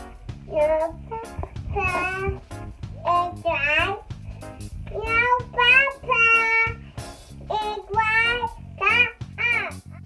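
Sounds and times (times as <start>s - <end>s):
background music: 0.0s - 10.0s
toddler girl singing: 0.5s - 4.1s, 4.8s - 6.8s, 7.4s - 9.8s.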